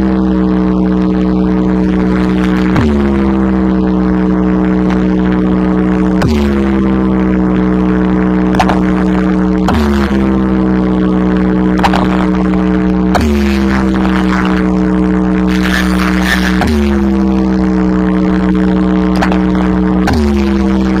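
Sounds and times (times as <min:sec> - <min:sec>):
deep bass: 0:00.0 - 0:21.0
droning electronic tone: 0:00.0 - 0:21.0.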